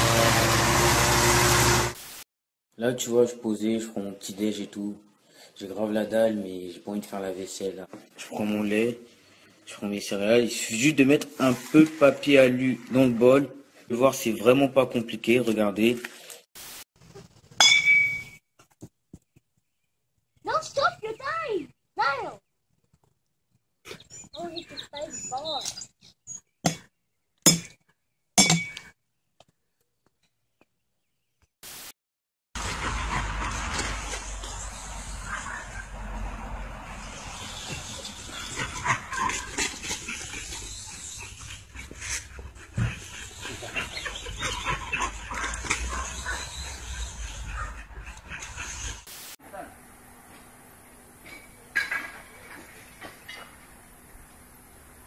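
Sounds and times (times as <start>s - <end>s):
outdoor hiss: 49.1s - 51.7s.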